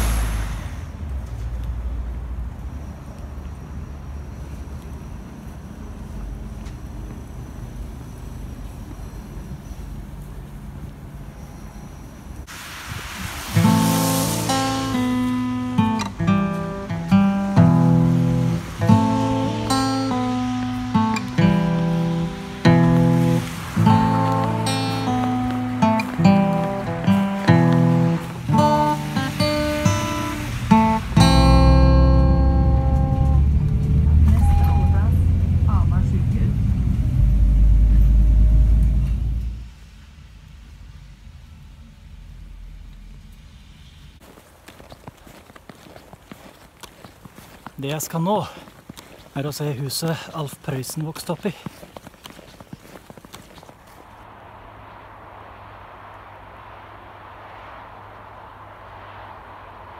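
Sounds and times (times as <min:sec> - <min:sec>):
low outdoor rumble: 0:00.0 - 0:47.8, 0:51.5 - 0:59.9
strummed acoustic guitar chords: 0:13.6 - 0:33.4.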